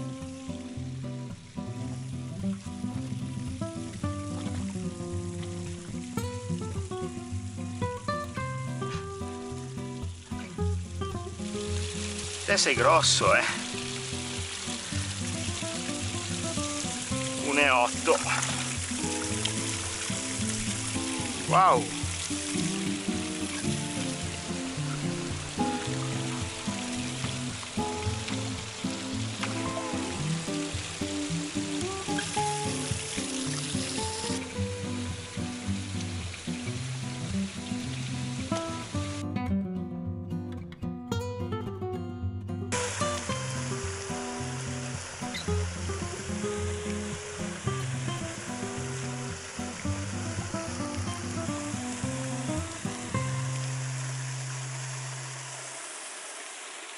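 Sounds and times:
running water hiss: 0:00.0 - 0:39.4, 0:42.7 - 0:56.9
background music: 0:00.0 - 0:53.3.

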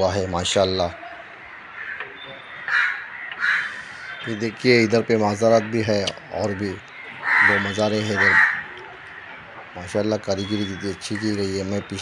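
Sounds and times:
crow cawing: 0:00.9 - 0:09.8.

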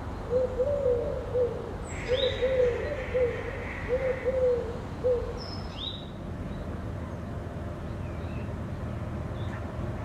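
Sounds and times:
dove cooing: 0:00.3 - 0:05.4.

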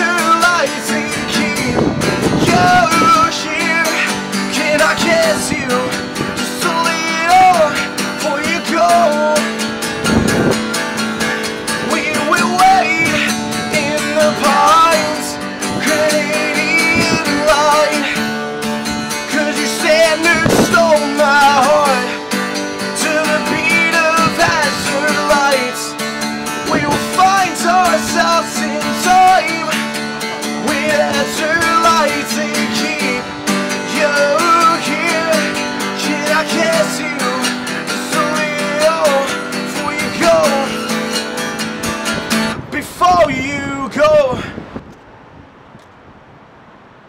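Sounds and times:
man singing: 0:00.0 - 0:10.5, 0:11.5 - 0:41.2, 0:42.6 - 0:44.6
strummed acoustic guitar: 0:00.0 - 0:44.4.

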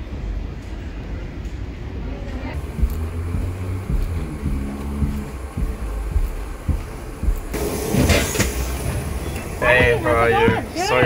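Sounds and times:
footsteps on hollow floor: 0:02.6 - 0:11.0
steady hiss: 0:02.6 - 0:11.0.

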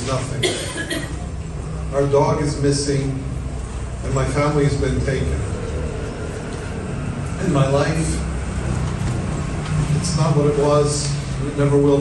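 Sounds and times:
low room rumble with hum: 0:00.0 - 0:12.0.

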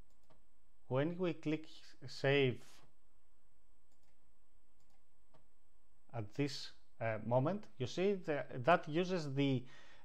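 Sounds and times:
computer mouse clicks: 0:00.0 - 0:00.4, 0:03.9 - 0:04.2, 0:04.8 - 0:05.5
low steady hiss: 0:00.0 - 0:10.0.

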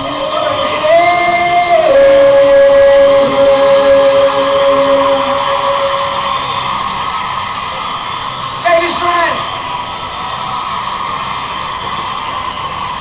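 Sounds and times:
rock band long held note: 0:00.0 - 0:13.0.

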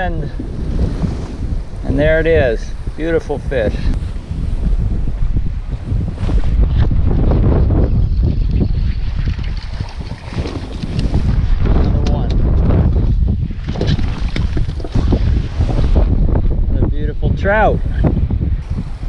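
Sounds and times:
wind buffeting microphone: 0:00.0 - 0:19.0
water slapping against hull: 0:08.0 - 0:16.2.

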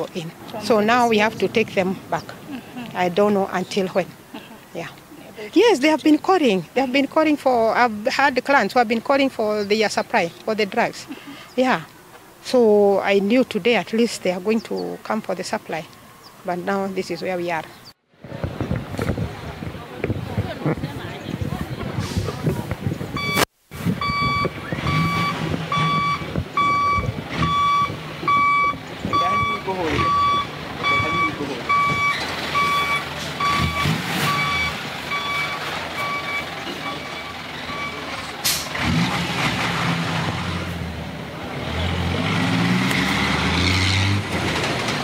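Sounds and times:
reversing alarm beeps: 0:23.2 - 0:23.4, 0:24.0 - 0:38.1
engine revving: 0:24.1 - 0:45.0
diesel engine idling: 0:25.9 - 0:39.0.

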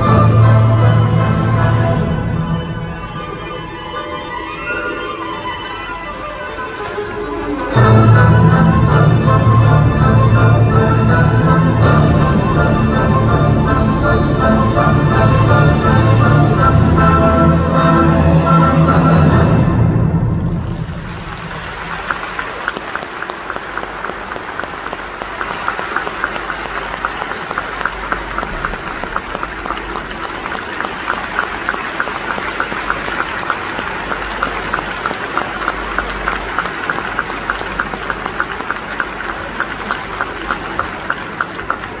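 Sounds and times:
music: 0:00.0 - 0:22.4
audience applauding: 0:20.3 - 0:42.0
rhythmic clapping in unison: 0:20.6 - 0:42.0.

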